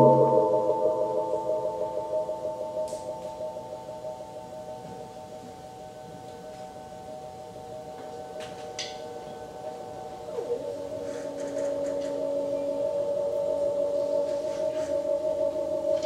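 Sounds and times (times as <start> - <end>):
metal percussion ringing: 0.0 - 6.2.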